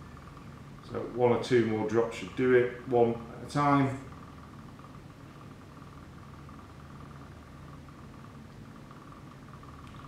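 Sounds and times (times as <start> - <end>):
low equipment drone: 0.0 - 10.0.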